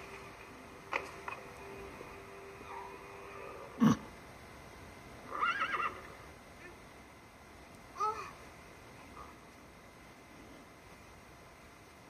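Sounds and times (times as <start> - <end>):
horse whinny: 5.3 - 6.2.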